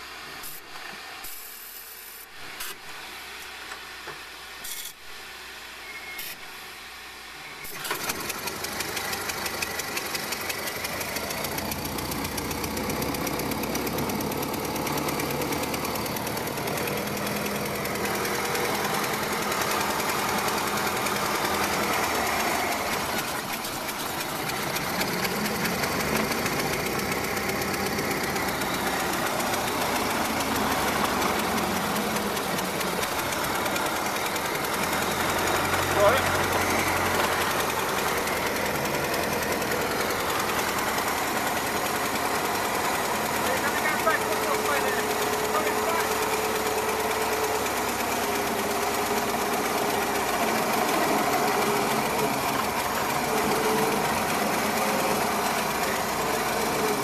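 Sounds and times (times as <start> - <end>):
car engine running: 7.7 - 57.0.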